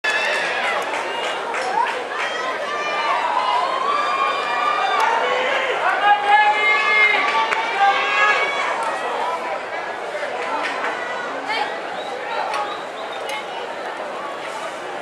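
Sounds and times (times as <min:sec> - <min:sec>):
stadium crowd chattering: 0:00.0 - 0:15.0.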